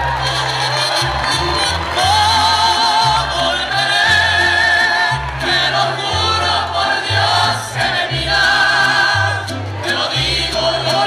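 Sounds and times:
crowd cheering: 0.0s - 11.0s
mariachi band playing: 0.0s - 11.0s.

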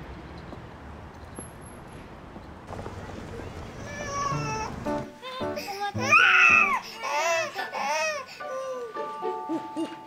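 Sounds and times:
city traffic rumble: 0.0s - 6.2s
baby whimpering and crying: 3.8s - 10.0s.

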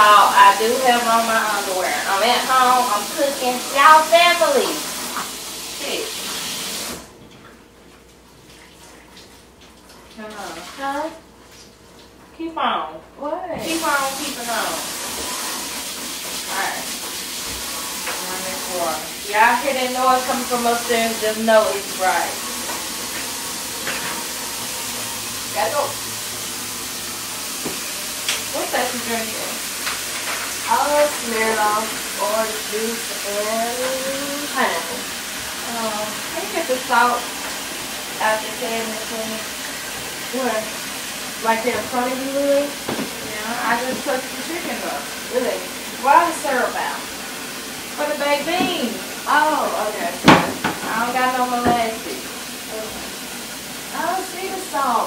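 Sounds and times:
faucet running into sink: 0.0s - 7.2s, 13.6s - 55.0s
person speaking: 30.7s - 35.0s, 48.0s - 53.0s.

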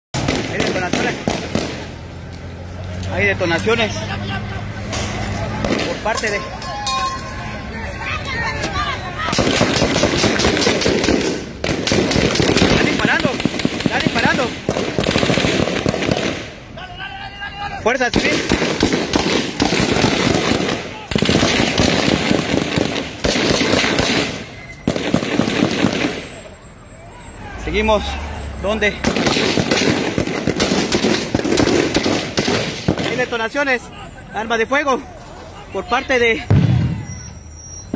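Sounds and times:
rapid gunfire: 0.2s - 1.9s, 9.3s - 16.6s, 18.1s - 26.3s, 29.0s - 33.4s
rapid gunshots: 0.2s - 2.0s, 9.3s - 16.6s, 18.0s - 26.4s, 29.0s - 33.5s.

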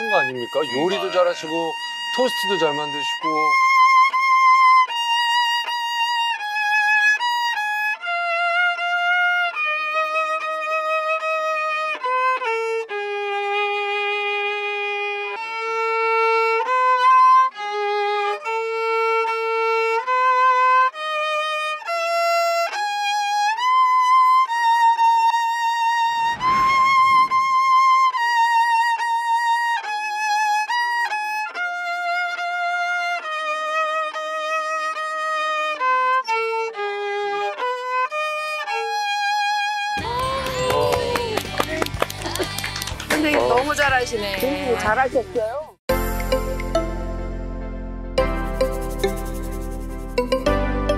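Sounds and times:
solo violin slow melody: 0.0s - 42.0s.

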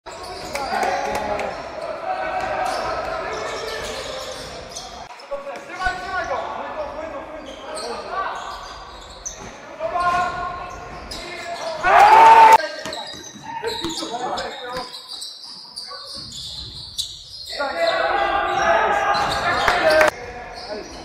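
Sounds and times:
players calling out: 17.4s - 21.0s.

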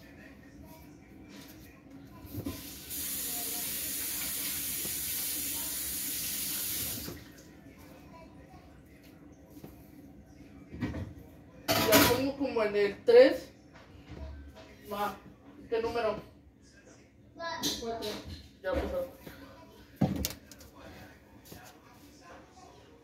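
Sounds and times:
kitchen tap running: 2.5s - 7.2s.

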